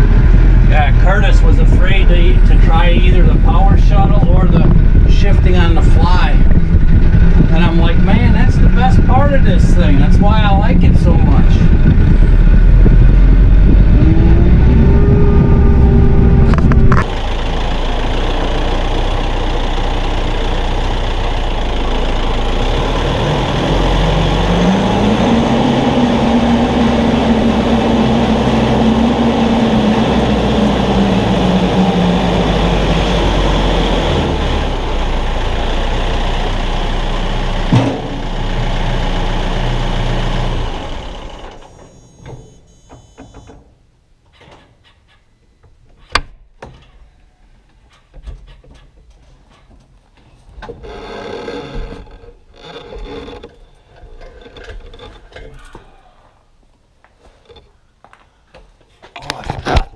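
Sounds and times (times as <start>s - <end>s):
tractor diesel engine running: 0.0s - 43.5s.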